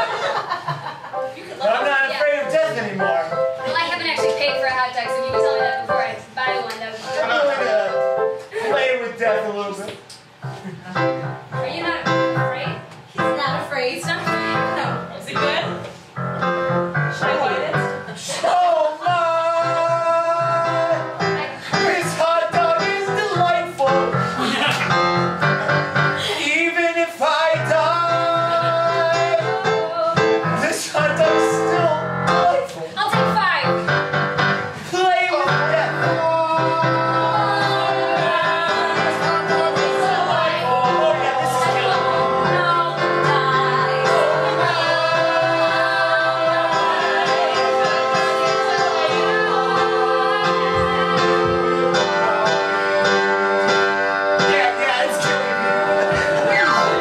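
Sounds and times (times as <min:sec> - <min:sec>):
live instrumental accompaniment: 0:00.0 - 0:18.4, 0:27.6 - 0:57.0
group singing held melody lines: 0:17.4 - 0:24.7, 0:25.3 - 0:31.8, 0:35.4 - 0:57.0.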